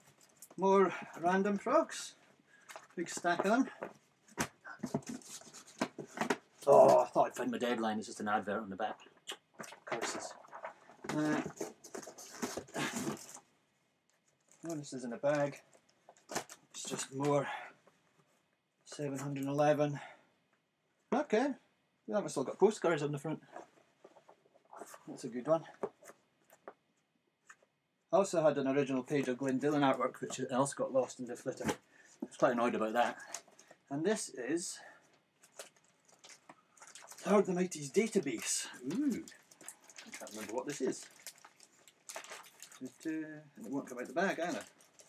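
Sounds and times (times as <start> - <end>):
paper and card rustling: 2.6 - 7.8, 9.6 - 13.4, 35.4 - 45.0.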